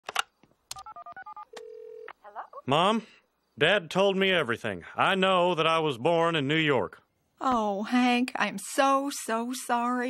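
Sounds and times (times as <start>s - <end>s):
steady phone line tone: 0.8s - 2.5s.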